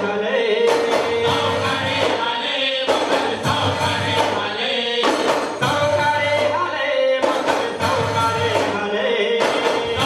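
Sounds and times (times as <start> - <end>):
men singing in chorus: 0.0 - 10.0
clay-pot drums beating: 0.6 - 2.2, 2.9 - 8.8, 9.4 - 10.0.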